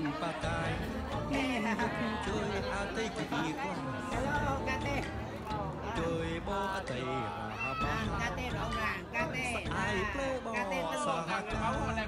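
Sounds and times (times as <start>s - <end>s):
people talking in high voices: 1.3s - 12.0s.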